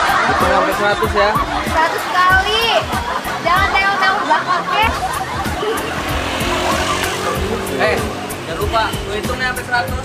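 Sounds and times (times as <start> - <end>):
background music: 0.0 - 10.0
tyres on the street: 0.0 - 10.0
car engine: 4.8 - 10.0.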